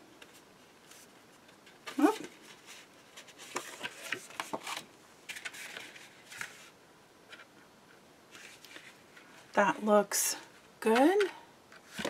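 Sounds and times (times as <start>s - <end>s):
crisp paper rustles and scrapes: 1.8s - 6.8s, 8.3s - 9.5s.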